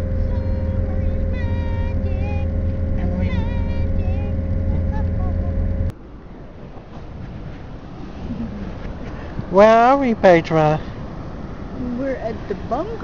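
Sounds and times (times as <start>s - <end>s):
engine droning with whine: 0.0s - 13.0s
outdoor ambience: 0.0s - 13.0s
high-pitched voice: 0.2s - 5.5s.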